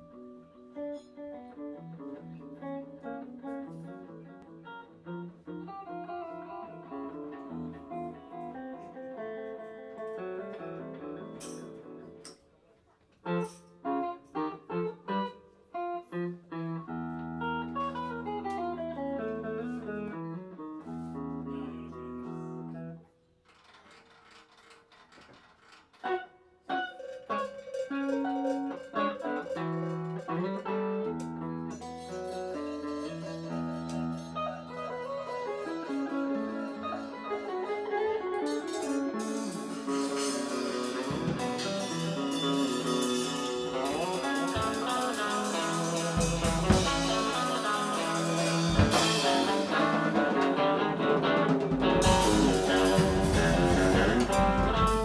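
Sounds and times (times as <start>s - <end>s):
electric guitar held notes: 0.0s - 12.4s, 13.2s - 23.0s, 26.0s - 55.0s
drums and cymbals: 38.4s - 55.0s.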